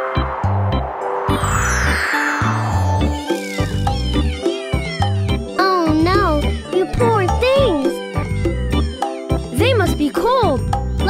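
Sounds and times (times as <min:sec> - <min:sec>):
whoosh: 0:00.0 - 0:03.7
sung kitten meows: 0:03.1 - 0:10.2
children's song backing music: 0:05.5 - 0:08.2, 0:09.0 - 0:11.0.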